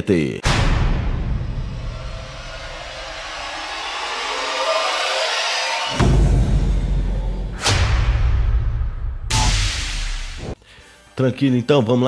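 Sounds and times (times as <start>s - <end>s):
deep bass hit: 0.4s - 4.6s, 5.9s - 10.6s
rising whoosh: 0.4s - 10.6s
sharp hit: 0.4s - 10.6s.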